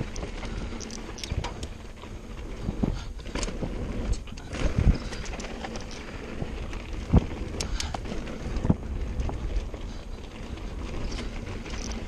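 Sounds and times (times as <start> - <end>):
bike rattling over bumps: 0.0 - 12.0
bike tyres rolling on dirt: 0.0 - 12.0.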